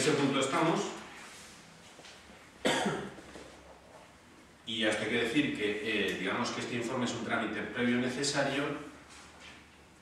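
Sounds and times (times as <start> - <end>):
man coughing: 2.6 - 3.2.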